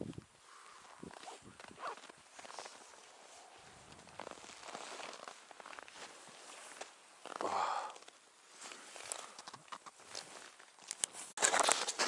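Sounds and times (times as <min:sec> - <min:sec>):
footsteps crunching in snow: 0:00.5 - 0:07.8.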